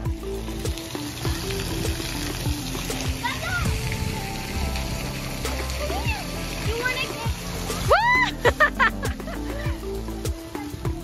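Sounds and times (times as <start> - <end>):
music with steady beat: 0.0 - 11.0
water splashing and spraying: 0.0 - 11.0.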